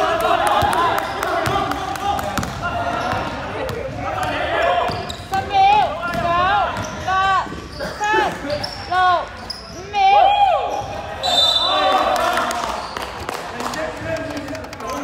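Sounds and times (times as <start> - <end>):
shoes squeaking on floor: 4.8 - 10.0
referee's whistle: 11.2 - 12.0.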